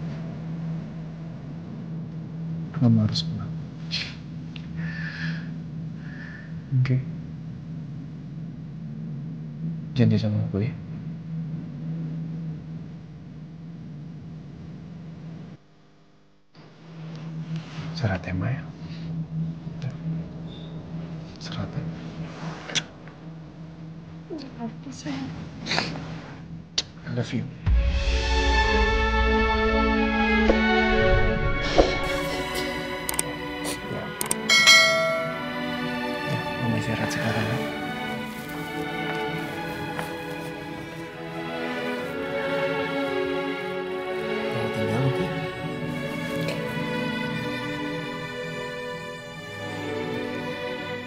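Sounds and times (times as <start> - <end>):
low steady drone: 0.0 - 15.6, 16.7 - 26.8, 27.4 - 51.0
slow sad background music: 17.0 - 26.3, 27.6 - 51.0
bell-like chiming note: 34.4 - 36.2.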